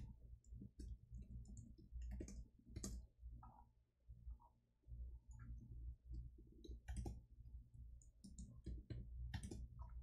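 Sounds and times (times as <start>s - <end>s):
computer keyboard typing: 0.0s - 3.6s, 6.1s - 7.3s, 7.9s - 10.0s
low steady hum: 0.0s - 10.0s.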